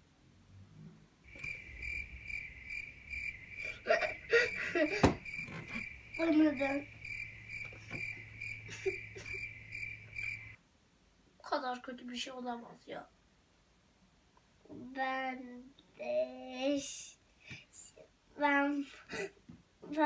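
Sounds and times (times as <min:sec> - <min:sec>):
low hum: 0:01.3 - 0:10.6
child vocal sounds: 0:03.6 - 0:05.1, 0:06.2 - 0:06.9.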